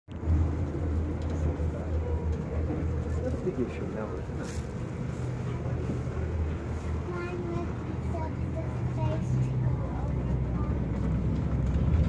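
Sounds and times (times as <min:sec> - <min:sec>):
diesel train rumble from inside: 0:00.1 - 0:12.0.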